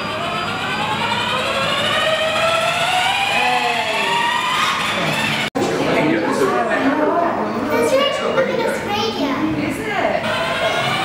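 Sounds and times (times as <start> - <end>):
toy car electric motor whining: 0.0 - 5.5, 10.2 - 11.0.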